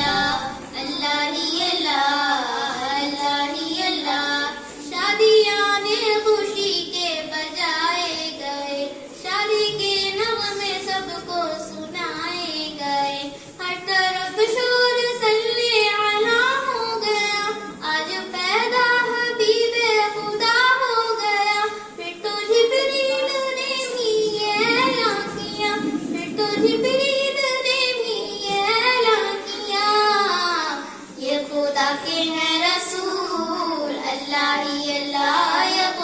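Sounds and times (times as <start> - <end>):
girl singing devotional song: 0.0 - 36.0.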